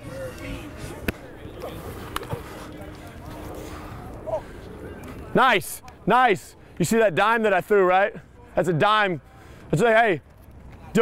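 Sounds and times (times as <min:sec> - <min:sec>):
faint distant voices: 0:00.0 - 0:11.0
steady background noise: 0:00.0 - 0:11.0.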